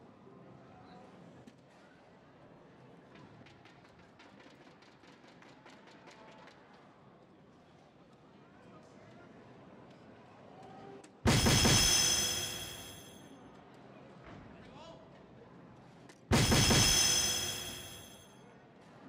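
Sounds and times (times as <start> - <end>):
low hall noise: 16.3 - 18.3.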